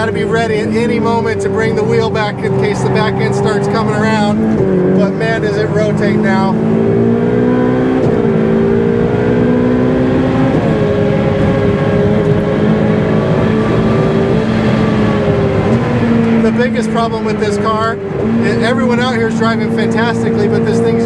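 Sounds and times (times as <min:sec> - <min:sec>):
car engine at speed: 0:00.0 - 0:21.0.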